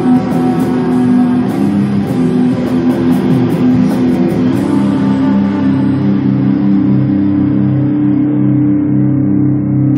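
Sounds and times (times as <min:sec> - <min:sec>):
electric guitar chord ringing: 0:00.0 - 0:09.9.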